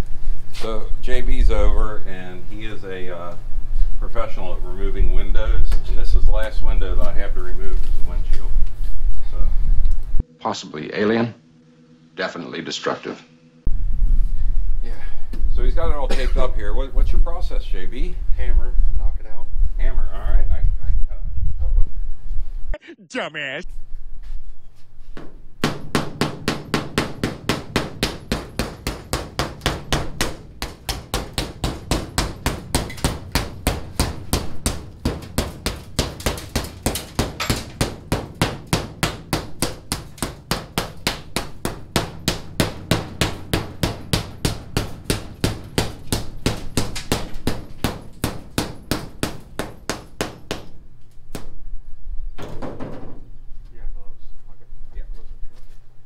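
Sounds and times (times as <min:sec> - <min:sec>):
hammer knocking out glass: 0:25.6 - 0:50.8.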